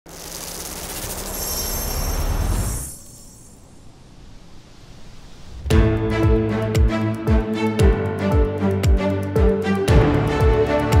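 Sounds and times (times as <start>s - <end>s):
rush of noise with low rumble: 2.4s - 6.1s.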